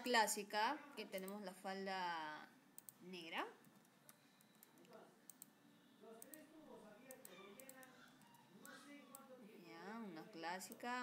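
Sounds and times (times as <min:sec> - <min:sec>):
computer mouse and keyboard clicks: 0:07.1 - 0:09.3.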